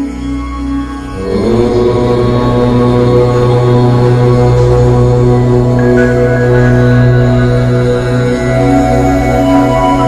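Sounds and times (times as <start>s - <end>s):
low chanted om: 0.0s - 10.0s
sustained background drone: 0.0s - 10.0s.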